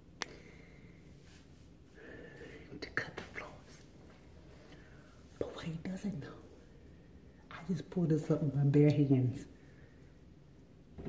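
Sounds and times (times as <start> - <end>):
woman speaking softly: 2.8 - 3.8, 5.4 - 6.6, 7.5 - 9.6.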